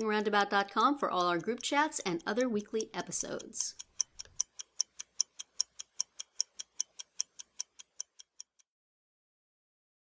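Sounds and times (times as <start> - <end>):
fast clock-like ticking: 0.0 - 8.7.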